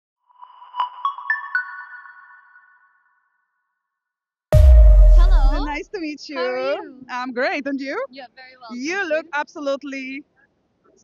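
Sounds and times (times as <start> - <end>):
electronic chime jingle: 4.6 - 5.8.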